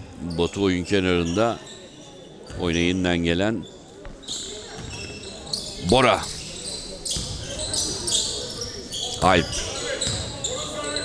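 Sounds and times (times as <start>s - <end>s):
sneakers squeaking: 0.0s - 2.9s, 3.6s - 11.0s.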